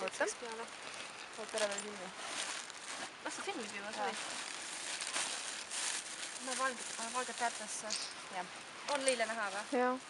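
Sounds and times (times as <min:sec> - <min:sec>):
plastic bag crinkling: 0:00.0 - 0:08.1.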